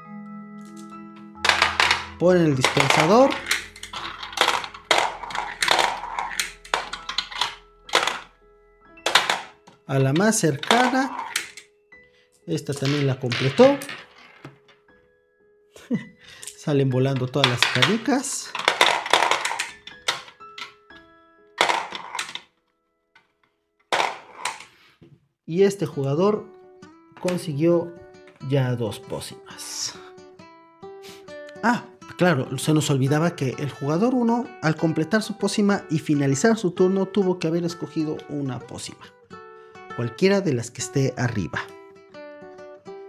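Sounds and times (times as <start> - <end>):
light background music: 0.0 - 22.9, 25.5 - 43.0
marbles clacking: 1.4 - 8.4, 9.0 - 11.7, 12.7 - 14.8, 16.4 - 20.8, 21.6 - 22.5, 23.9 - 24.7.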